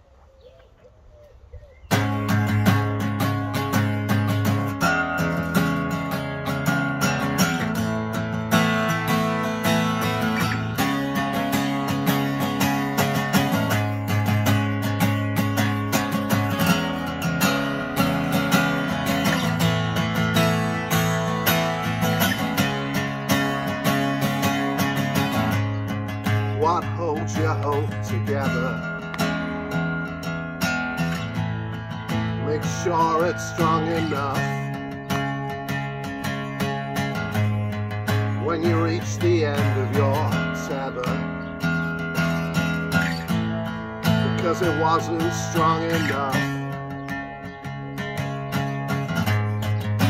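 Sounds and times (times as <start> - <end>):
acoustic guitar strumming chords: 1.9 - 50.0.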